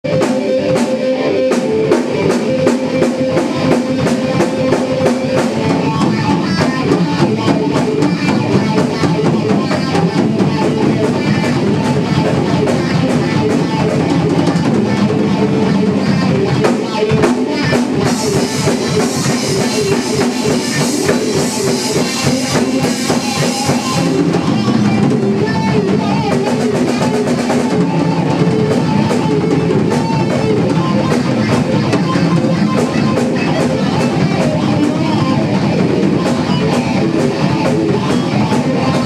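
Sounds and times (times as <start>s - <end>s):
drum kit playing: 0.0s - 39.0s
electric guitar playing: 0.0s - 39.0s.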